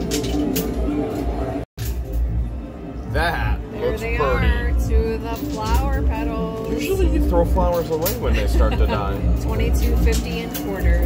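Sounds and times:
arcade background music: 0:00.0 - 0:11.0.

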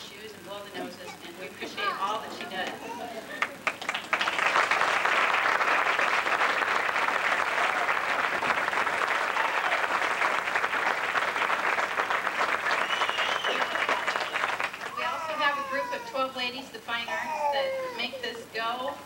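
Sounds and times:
audience applauding: 0:03.2 - 0:15.5.

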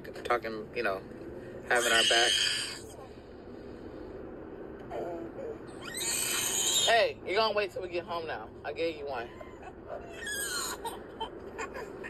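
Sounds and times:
child shrieking: 0:01.7 - 0:02.9, 0:05.8 - 0:06.9, 0:10.1 - 0:11.0.

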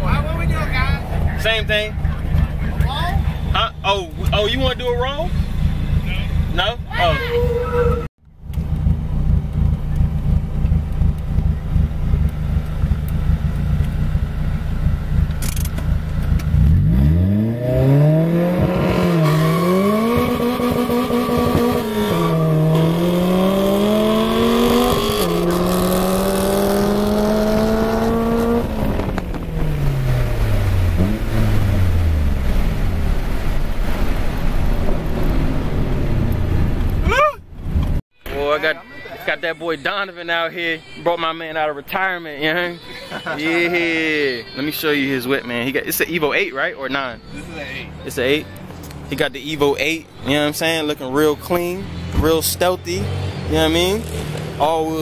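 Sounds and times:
car engine idling rumble: 0:00.0 - 0:17.0, 0:26.9 - 0:39.0
car engine revving and accelerating: 0:00.0 - 0:37.2, 0:47.4 - 0:55.0.

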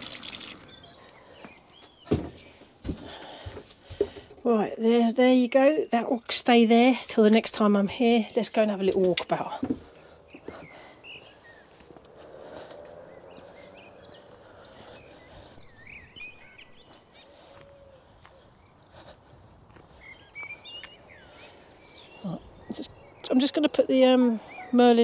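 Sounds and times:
birdsong whistles and warbles: 0:00.4 - 0:03.5, 0:09.2 - 0:25.0.

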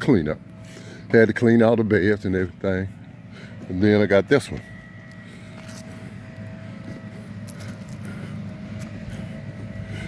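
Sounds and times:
vehicle engine and tyres rumbling: 0:00.0 - 0:10.0.

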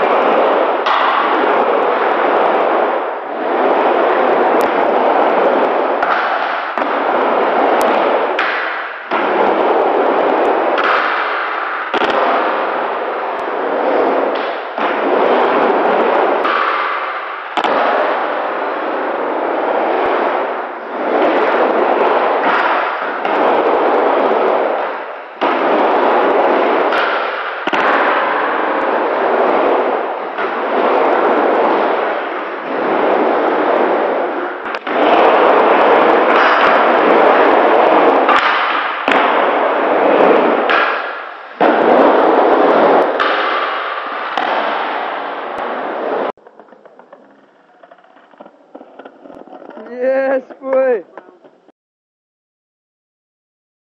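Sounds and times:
skateboard wheels rolling on ramp: 0:00.0 - 0:51.7
skateboard clacking on ramp: 0:06.0 - 0:12.8, 0:46.4 - 0:49.9.

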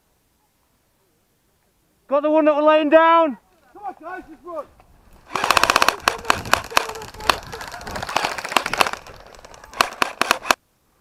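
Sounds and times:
airsoft guns firing: 0:05.2 - 0:10.6.

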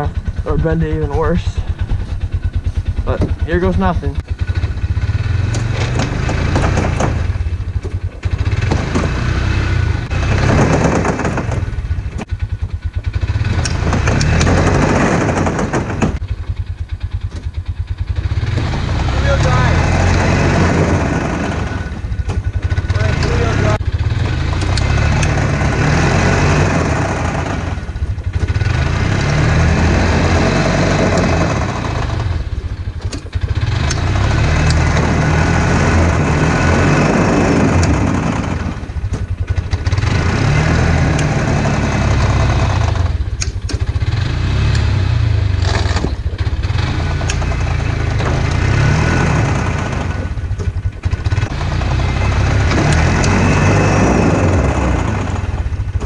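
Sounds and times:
engines running loud: 0:00.0 - 0:56.0.

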